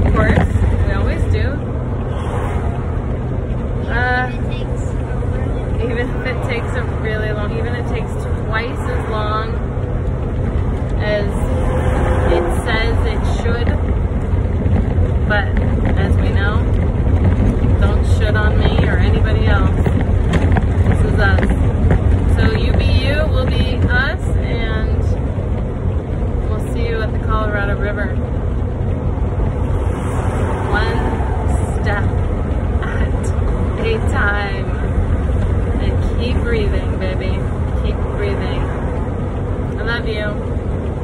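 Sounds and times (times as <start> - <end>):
woman talking: 0.0 - 1.6, 3.8 - 5.0, 5.7 - 9.7, 11.0 - 11.6, 12.2 - 13.9, 15.2 - 16.8, 17.6 - 20.0, 20.9 - 21.7, 22.3 - 25.2, 26.5 - 28.3, 30.7 - 34.9, 35.8 - 38.8, 39.8 - 40.5
engine and road noise drone: 0.0 - 41.0.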